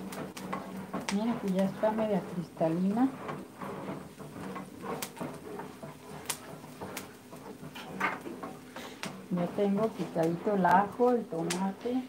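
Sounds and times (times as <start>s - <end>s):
onion sizzling in oil: 0.0s - 12.0s
wooden spoon scraping pan: 0.0s - 12.0s.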